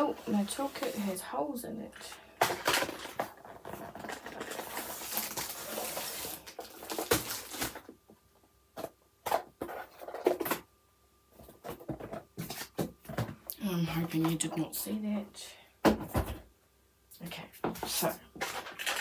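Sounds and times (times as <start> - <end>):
plastic packaging crinkling: 2.5 - 8.0, 18.4 - 19.0.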